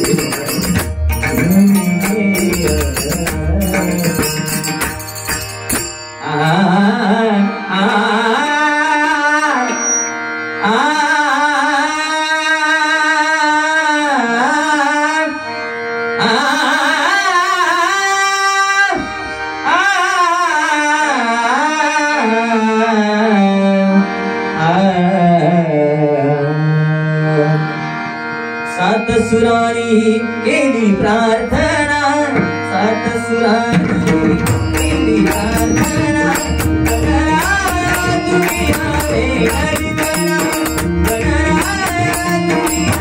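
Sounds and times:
hand drums: 0.0 - 6.0, 33.7 - 43.0
harmonium: 0.0 - 43.0
man singing devotional song: 0.0 - 43.0.

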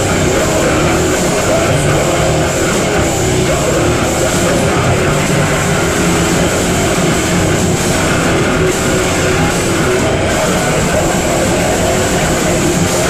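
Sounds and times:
bass guitar: 0.0 - 13.0
distorted electric guitar: 0.0 - 13.0
drums: 0.0 - 13.0.

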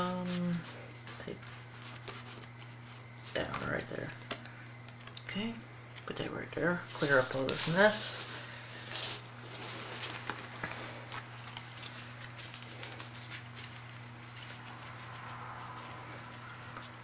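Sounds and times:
playing cards rustling and tapping: 0.0 - 5.2, 6.9 - 17.0
steady low hum: 0.0 - 17.0.

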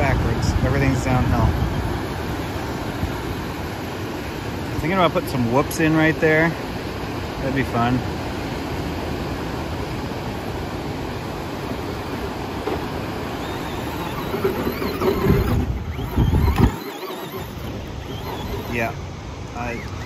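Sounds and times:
wheels spinning in sand: 0.0 - 6.6, 9.9 - 20.0
surf: 0.0 - 20.0
wind: 0.0 - 20.0
electric motor whining: 11.8 - 20.0.

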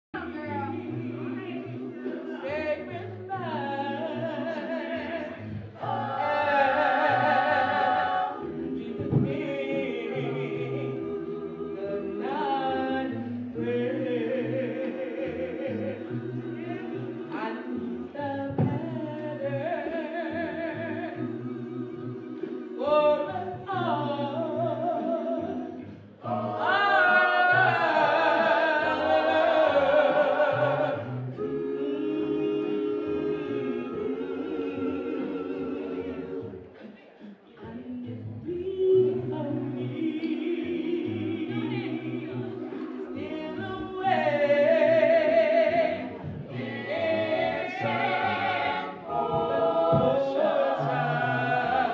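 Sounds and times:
church vocal group singing: 0.2 - 51.9.

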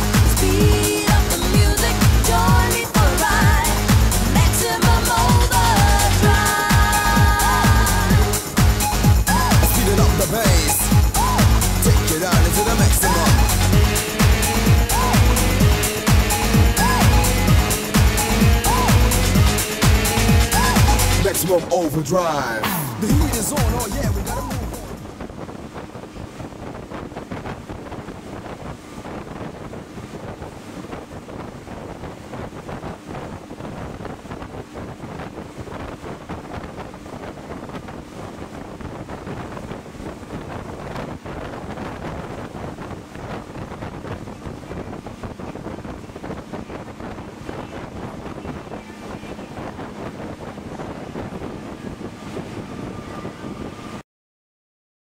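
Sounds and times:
speedboat engine hum: 0.0 - 54.0
water rushing along hull: 0.0 - 54.0
wind buffeting microphone: 0.0 - 54.0.

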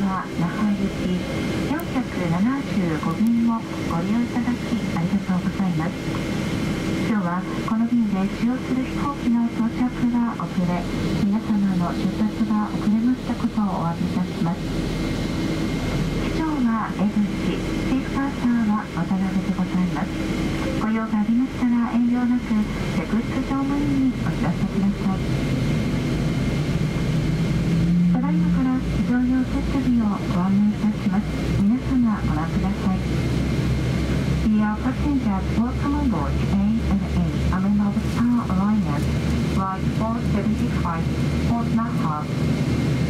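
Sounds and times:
announcement over public address: 0.0 - 42.9
low aircraft cabin hum: 0.0 - 43.0.

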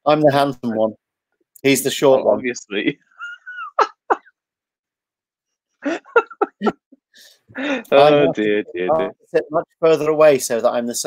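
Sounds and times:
man laughing wheezily: 3.1 - 4.3, 5.8 - 7.9.

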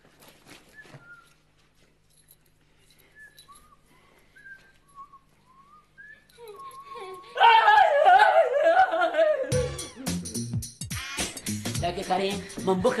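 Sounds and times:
faint whistle-like chirps: 0.7 - 1.5, 3.0 - 7.0.

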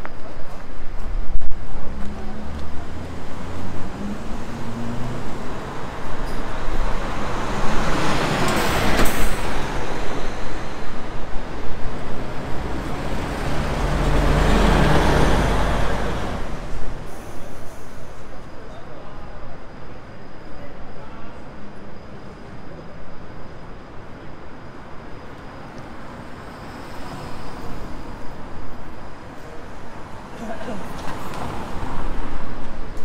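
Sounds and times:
heavy vehicle deep rumble: 0.0 - 18.3
road traffic passing: 0.0 - 18.6, 21.7 - 33.0.

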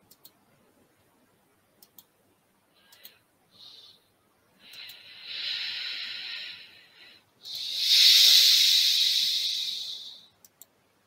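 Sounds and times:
long hisses: 4.6 - 10.3.

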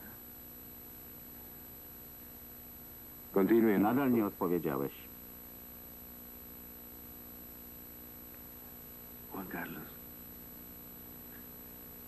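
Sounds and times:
faint electrical hum: 0.0 - 12.0
light hiss: 5.4 - 12.0.

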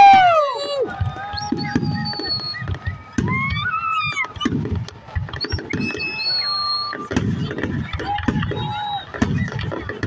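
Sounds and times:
fireworks bangs and crackles: 0.0 - 10.0
fireworks whistling: 0.0 - 10.0.

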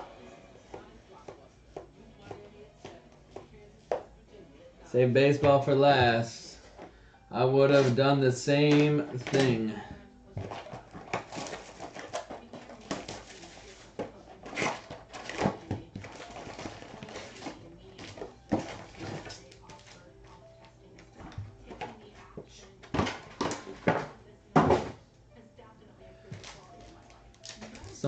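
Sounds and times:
foil packs crinkling: 10.4 - 20.1, 26.4 - 28.0
plastic wrap tearing: 26.4 - 28.0.

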